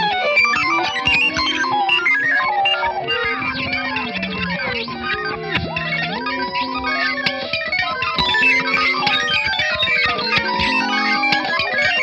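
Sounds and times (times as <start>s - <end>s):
electric guitar fast picked notes: 0.0s - 12.0s.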